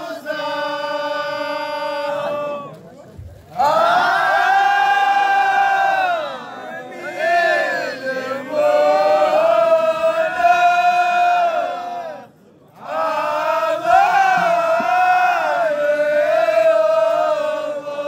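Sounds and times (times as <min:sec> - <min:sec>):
men chanting together: 0:03.6 - 0:18.0.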